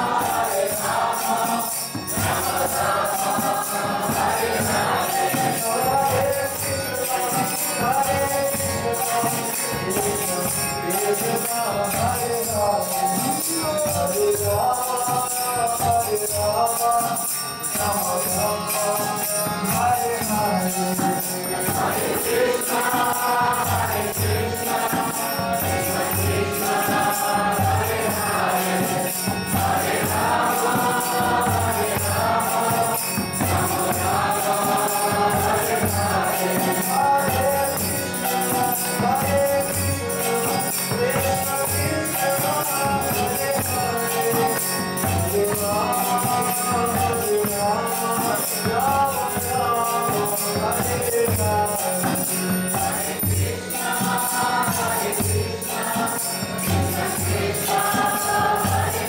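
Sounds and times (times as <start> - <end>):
group singing a devotional chant: 0.0 - 59.0
jingling hand cymbals: 0.0 - 59.0.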